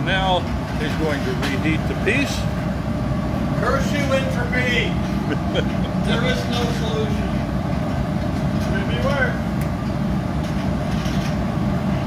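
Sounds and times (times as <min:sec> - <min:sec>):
furnace roaring: 0:00.0 - 0:12.0.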